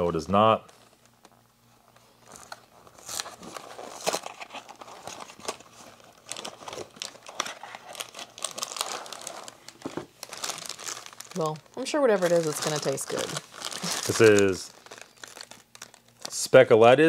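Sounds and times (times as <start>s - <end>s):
packaging crinkling: 0.4s - 16.6s.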